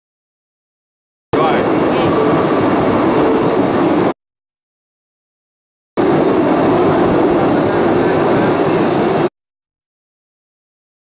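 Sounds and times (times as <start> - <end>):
train rattling on rails: 1.4 - 4.2, 6.0 - 9.3.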